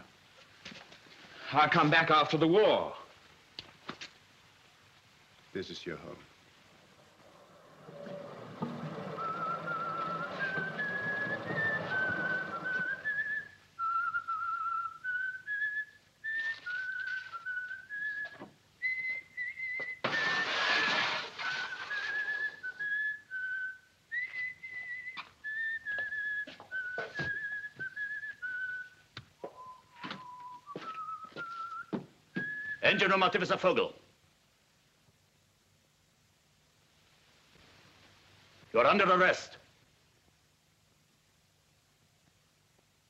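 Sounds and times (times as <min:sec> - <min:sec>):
dough mixer running: 0:07.8 - 0:12.9
man whistling a tune: 0:09.0 - 0:20.5, 0:21.4 - 0:33.0.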